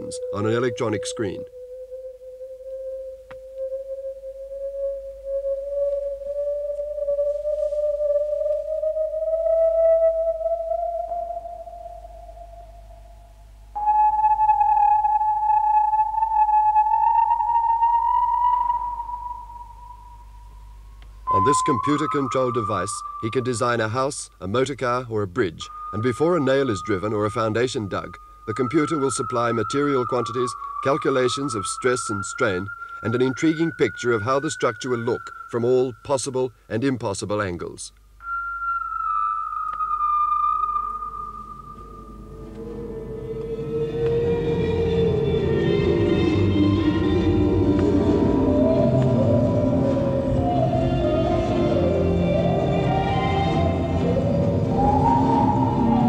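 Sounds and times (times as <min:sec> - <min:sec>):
faint low hum: 0:00.0 - 0:56.0
sustained electronic tones: 0:00.0 - 0:56.0
high electronic tone sliding down: 0:21.2 - 0:36.4, 0:38.2 - 0:50.9.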